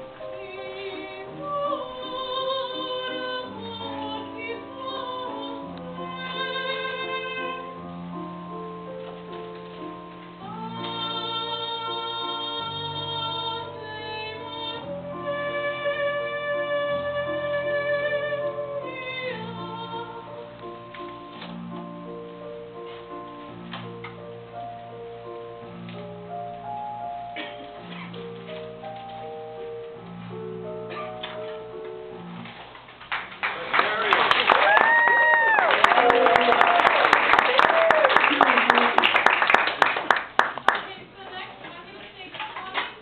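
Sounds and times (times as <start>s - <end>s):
audience applause: 33.1s - 40.9s.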